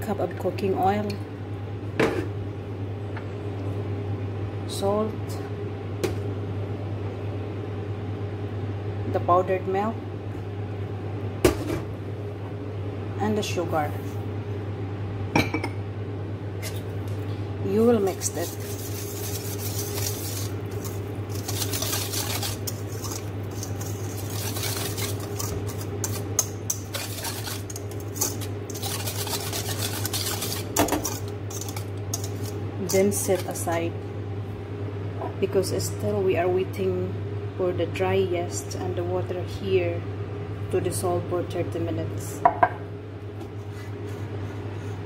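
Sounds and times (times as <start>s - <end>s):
steady low hum: 0.0s - 45.0s
whisk beating in metal bowl: 17.9s - 33.8s.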